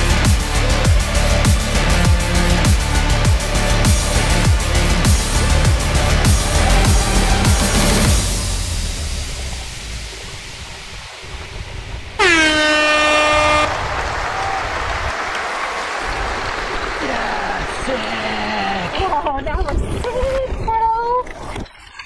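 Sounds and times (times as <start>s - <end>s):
background music: 0.0s - 10.6s
steady rushing noise: 0.0s - 12.2s
air horn: 12.2s - 13.8s.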